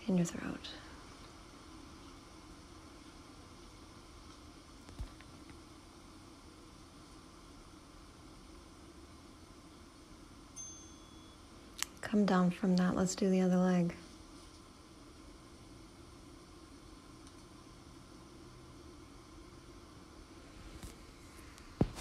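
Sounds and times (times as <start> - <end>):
soft thump: 21.8 - 22.0.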